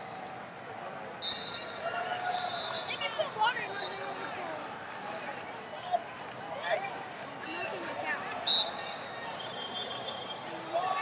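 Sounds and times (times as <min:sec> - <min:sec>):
crowd chatter: 0:00.0 - 0:11.0
referee's whistle: 0:01.2 - 0:04.1, 0:08.4 - 0:10.6.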